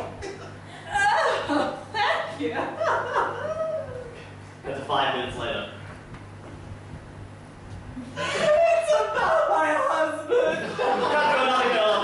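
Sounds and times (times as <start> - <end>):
low hum of hall: 0.0 - 12.0.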